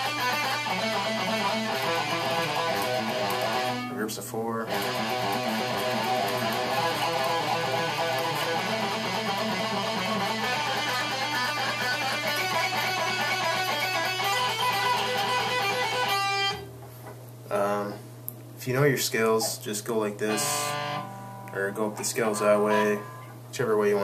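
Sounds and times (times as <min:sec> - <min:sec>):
electric guitar fast picked notes: 0:00.0 - 0:03.9, 0:04.7 - 0:16.6
steady low hum: 0:16.6 - 0:24.0.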